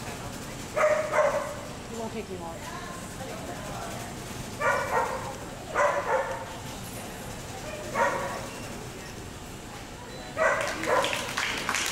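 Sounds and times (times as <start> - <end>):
dog barking: 0.8 - 1.6, 4.6 - 6.5, 7.8 - 8.5, 10.4 - 11.3.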